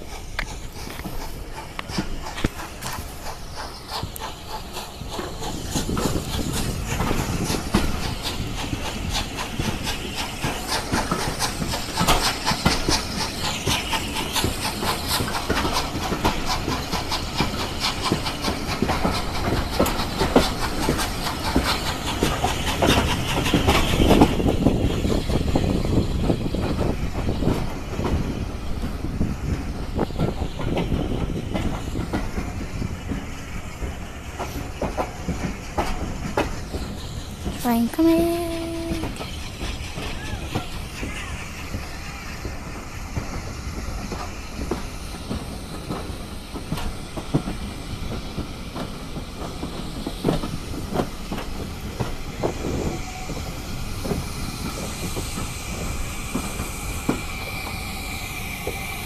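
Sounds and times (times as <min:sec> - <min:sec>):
train wheels clicking over rails: 0:00.0 - 0:59.0.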